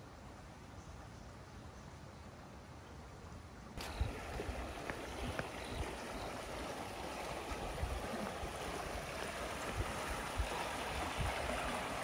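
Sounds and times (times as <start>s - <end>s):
water rushing along channel: 3.8s - 12.0s.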